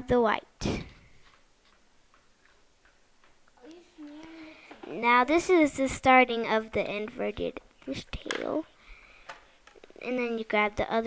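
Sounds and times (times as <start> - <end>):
person humming: 3.6 - 4.7.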